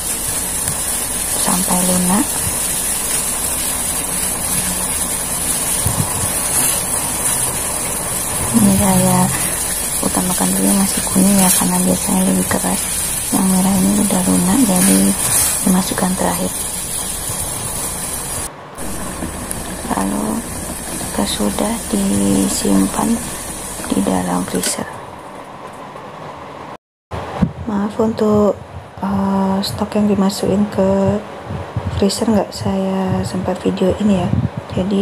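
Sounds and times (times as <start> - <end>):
water boiling in a pot: 0.0 - 25.3.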